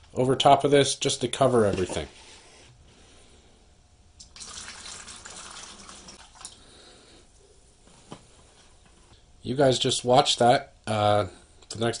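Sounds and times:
liquid pouring into plastic tub: 0:04.2 - 0:06.6.

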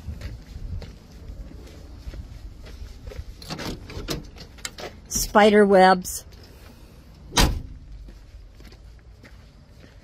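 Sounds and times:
low wind rumble: 0:00.0 - 0:05.1
footsteps on gravel: 0:00.0 - 0:07.0, 0:07.7 - 0:10.0.

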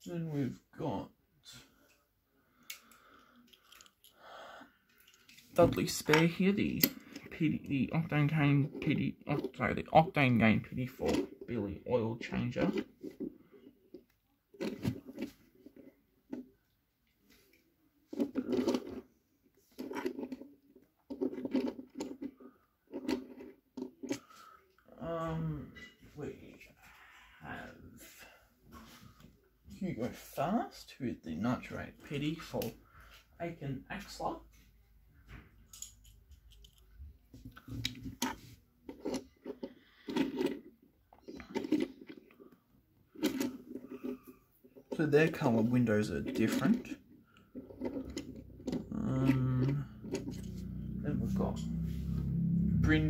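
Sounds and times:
metal toys scraping on wood: 0:18.1 - 0:20.5, 0:21.1 - 0:24.4, 0:38.1 - 0:42.4, 0:43.1 - 0:52.2.

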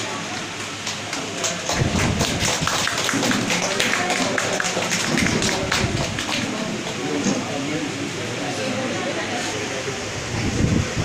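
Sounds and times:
people clapping: 0:00.0 - 0:07.4.

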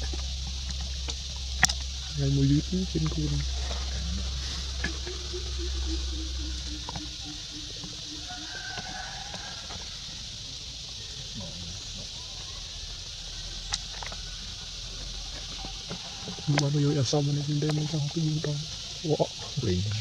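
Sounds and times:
insects droning: 0:00.0 - 0:20.0.

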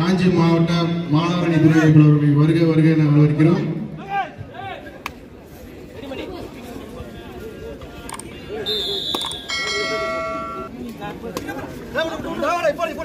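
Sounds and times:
spectators chattering: 0:01.2 - 0:13.0
high steady tone: 0:08.7 - 0:10.7
ringing tone with overtones: 0:09.4 - 0:10.7.

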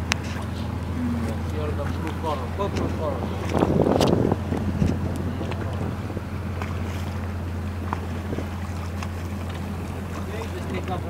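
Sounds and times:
boat engine droning: 0:00.0 - 0:11.0.

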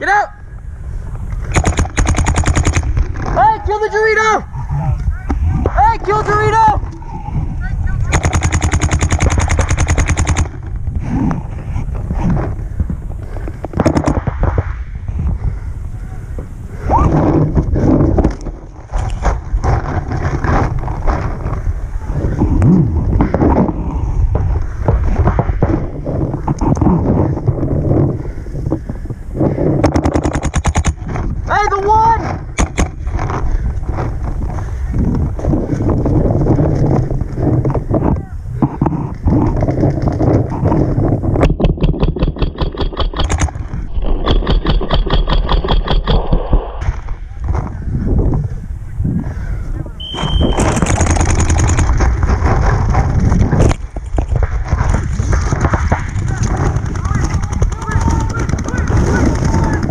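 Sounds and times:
paintball markers firing: 0:01.4 - 0:03.4, 0:08.1 - 0:10.7, 0:13.6 - 0:14.6, 0:29.8 - 0:31.2, 0:32.6 - 0:33.4, 0:41.4 - 0:47.0, 0:50.0 - 0:52.9, 0:53.5 - 0:59.9.

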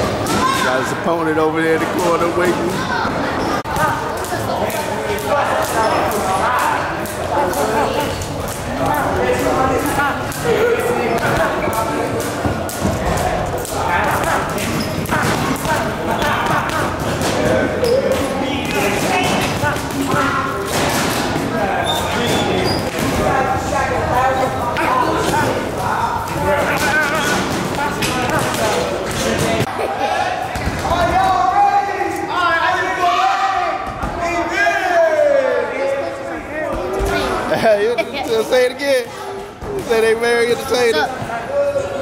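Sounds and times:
people talking: 0:00.0 - 0:42.0.

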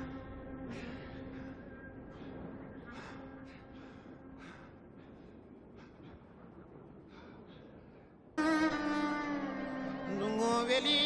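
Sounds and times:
heavy breathy panting: 0:00.0 - 0:08.3.

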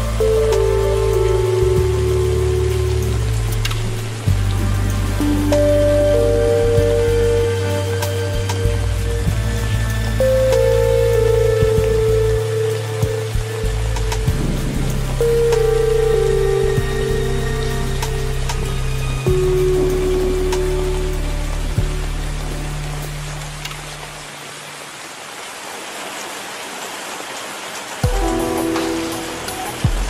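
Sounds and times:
slow calm music: 0:00.0 - 0:24.8, 0:28.0 - 0:30.0
steady rainfall: 0:00.0 - 0:30.0
raindrop clicks: 0:02.6 - 0:04.6, 0:13.3 - 0:15.7, 0:23.2 - 0:24.2.

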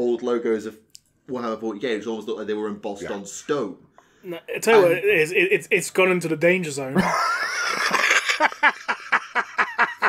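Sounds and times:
men laughing: 0:04.6 - 0:05.8, 0:07.0 - 0:10.0.

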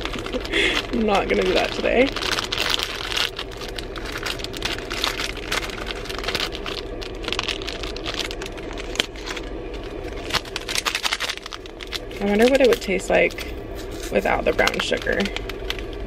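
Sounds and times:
car cabin hum: 0:00.0 - 0:16.0
plastic snack packet crinkling: 0:00.0 - 0:16.0.

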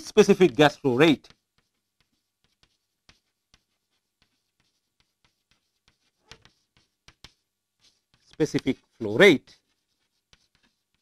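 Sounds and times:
chalk writing on chalkboard: 0:00.0 - 0:11.0.

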